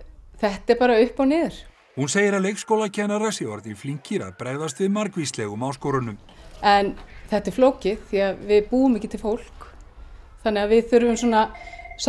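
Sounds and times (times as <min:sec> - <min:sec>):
electronic beep: 0:02.0 - 0:06.1, 0:11.2 - 0:12.0
person speaking: 0:02.0 - 0:06.8.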